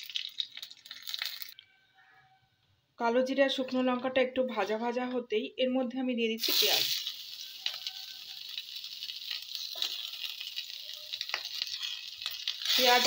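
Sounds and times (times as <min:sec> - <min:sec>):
small oil crackles: 0:00.0 - 0:01.6, 0:06.4 - 0:13.0
vegetables sizzling in hot oil: 0:00.0 - 0:01.6, 0:06.4 - 0:13.0.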